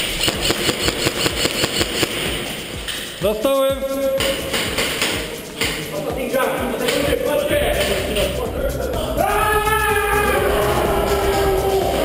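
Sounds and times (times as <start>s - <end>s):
airsoft gun firing full auto: 0.1s - 2.5s.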